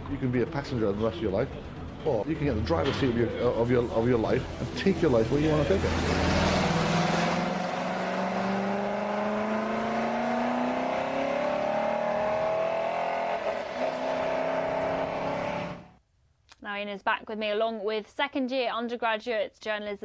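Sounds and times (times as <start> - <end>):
race car engine pulling away: 2.3 - 15.9.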